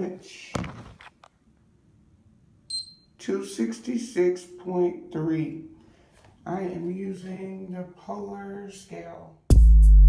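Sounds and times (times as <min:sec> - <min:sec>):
bathroom scale beep: 0:02.7 - 0:03.2.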